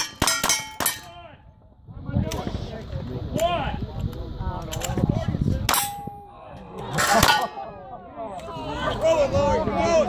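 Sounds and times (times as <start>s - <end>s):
metallic clang of steel target: 0.0s - 1.2s, 5.7s - 6.3s, 7.0s - 7.6s.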